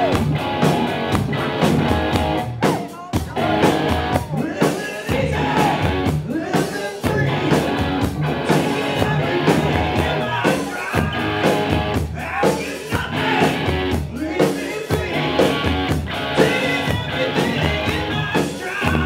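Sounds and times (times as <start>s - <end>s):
electric guitar: 0.0s - 12.2s, 12.9s - 14.2s, 14.9s - 19.0s
drums: 0.0s - 19.0s
live rock band playing: 0.0s - 19.0s
man singing: 2.6s - 19.0s.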